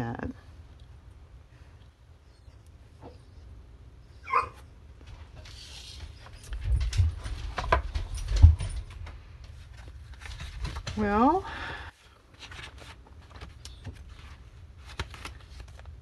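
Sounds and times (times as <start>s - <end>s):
dog barking: 4.3s - 4.6s.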